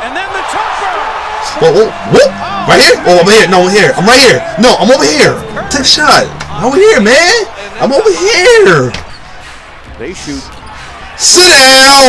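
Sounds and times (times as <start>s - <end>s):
arena noise: 0.0s - 12.0s.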